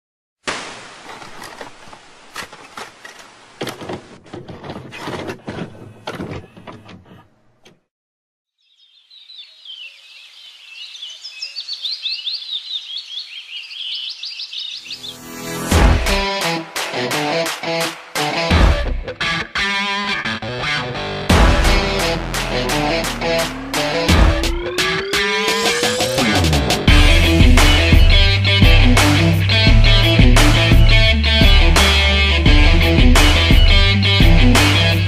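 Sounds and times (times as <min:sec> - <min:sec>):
crackling static hiss: 0:00.4 - 0:03.8
birds chirping: 0:08.6 - 0:15.6
music with deep thud: 0:15.7 - 0:16.4, 0:18.5 - 0:19.1, 0:21.3 - 0:24.9, 0:26.8 - 0:34.9.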